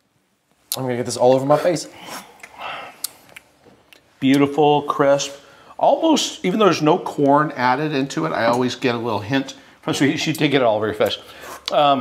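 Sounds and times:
man breathing out and sniffing: 0:11.3 - 0:11.7.

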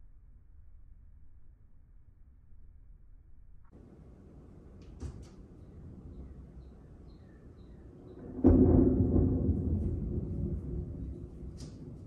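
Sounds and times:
thunder rumbling: 0:03.8 - 0:12.0
thunder clap: 0:04.9 - 0:12.0
faint bird chirps: 0:05.5 - 0:08.3.

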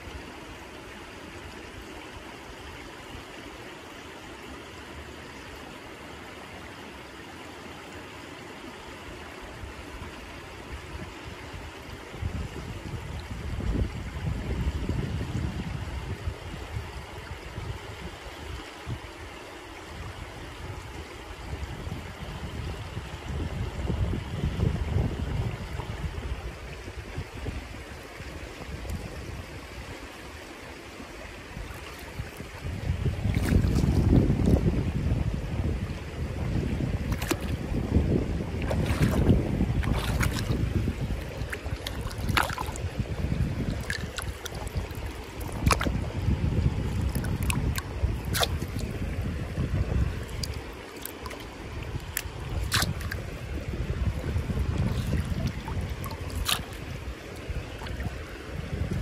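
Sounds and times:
river water running over stones: 0:00.0 - 0:59.0
wind buffeting microphone: 0:10.7 - 0:19.1, 0:20.0 - 0:30.0, 0:31.4 - 0:59.0
hand splashing water: 0:37.1 - 0:37.6, 0:38.6 - 0:43.0, 0:43.6 - 0:46.0, 0:47.0 - 0:49.0, 0:50.2 - 0:53.3, 0:54.0 - 0:58.2.

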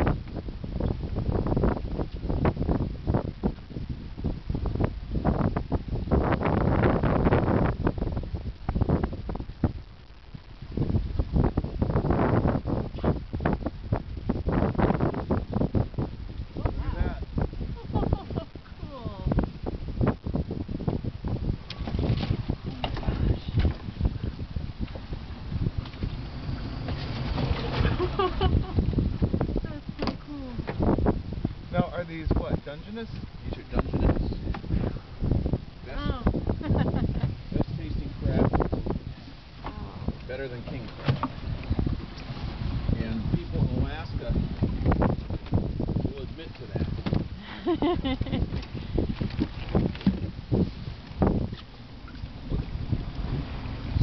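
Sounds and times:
wind rumbling on microphone: 0:00.0 - 0:54.0.

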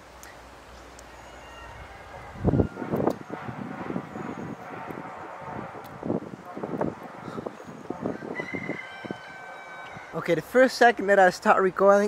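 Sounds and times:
distant truck traffic: 0:00.0 - 0:12.0
wind rumbling on microphone: 0:01.6 - 0:10.4.

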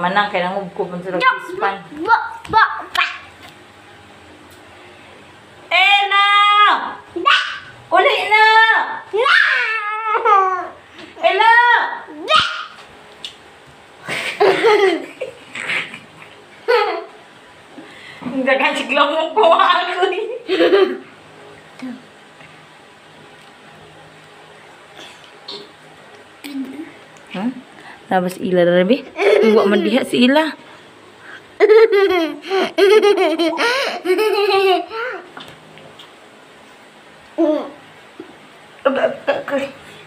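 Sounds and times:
child babbling and laughing: 0:09.2 - 0:10.8, 0:31.6 - 0:35.3
young girl laughing: 0:14.1 - 0:17.2, 0:20.4 - 0:21.1, 0:29.2 - 0:30.1, 0:31.6 - 0:35.3.

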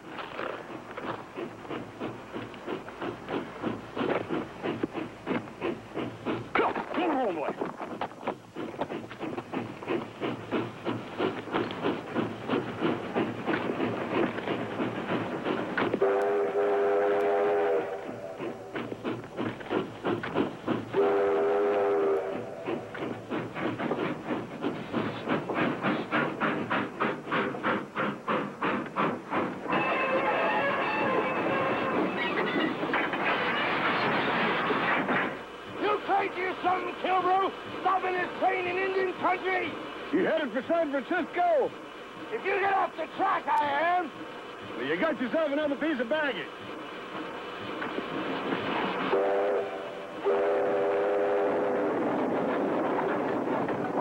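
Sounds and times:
steam locomotive chuffing: 0:00.0 - 0:54.0
steam whistle blasts: 0:16.0 - 0:18.4, 0:21.0 - 0:22.6, 0:29.7 - 0:32.5, 0:49.1 - 0:51.9.

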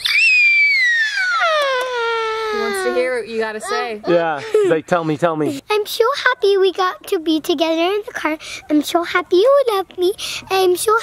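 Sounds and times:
girl wailing: 0:00.0 - 0:04.3.

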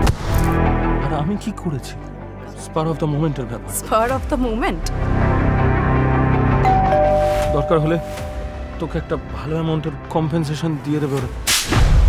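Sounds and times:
man speaking: 0:07.5 - 0:09.4.

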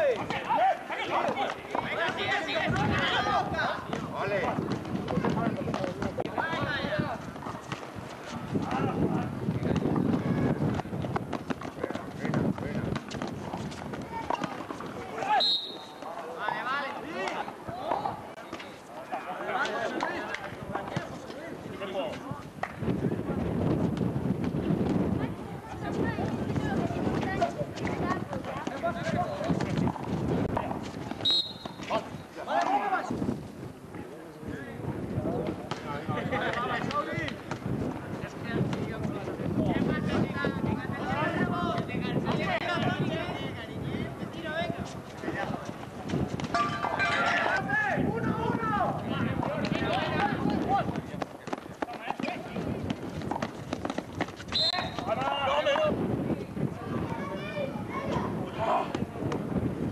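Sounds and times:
players shouting: 0:00.0 - 0:04.4
players calling and shouting: 0:00.0 - 0:22.8, 0:24.4 - 0:33.2, 0:33.8 - 0:59.4
running footsteps on concrete: 0:00.0 - 0:34.1, 0:35.4 - 0:57.5
referee's whistle: 0:15.4 - 0:16.0, 0:31.2 - 0:31.8, 0:54.5 - 0:55.1.

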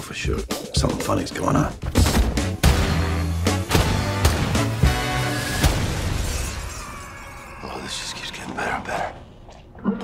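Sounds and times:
trailer music hit: 0:02.4 - 0:06.9
glass shattering: 0:05.6 - 0:07.4.

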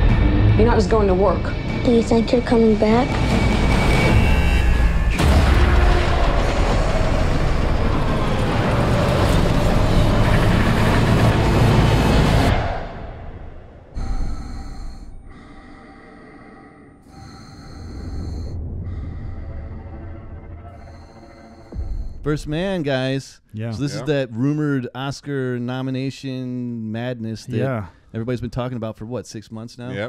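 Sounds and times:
deep rumbling roar: 0:00.0 - 0:20.8
trailer music: 0:00.0 - 0:23.0.

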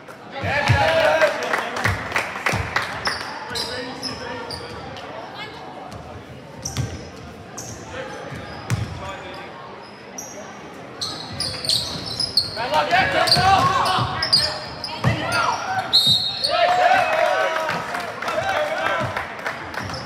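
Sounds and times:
crowd chatter: 0:00.0 - 0:20.0
sneaker squeaks: 0:03.0 - 0:05.0, 0:05.9 - 0:16.6.

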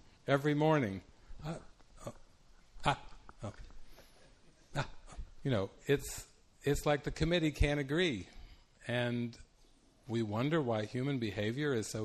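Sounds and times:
man grunting hesitantly: 0:04.7 - 0:05.4.

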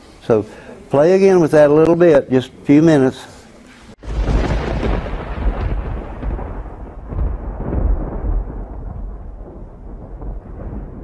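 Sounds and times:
deep rolling rumble: 0:04.0 - 0:11.0.

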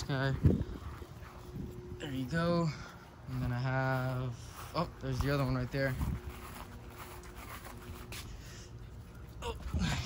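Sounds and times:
rubbing and scuffing: 0:03.3 - 0:08.8.

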